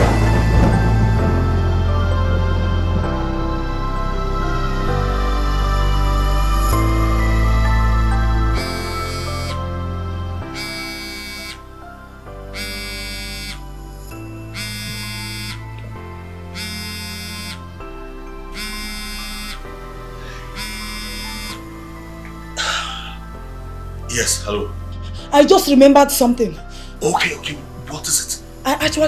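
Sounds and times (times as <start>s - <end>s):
soft background music: 0.0s - 29.0s
smartphone ringing buzz: 8.7s - 9.6s, 10.5s - 11.6s, 12.6s - 13.6s, 14.5s - 15.7s, 16.5s - 17.7s, 18.5s - 19.7s, 20.5s - 21.6s.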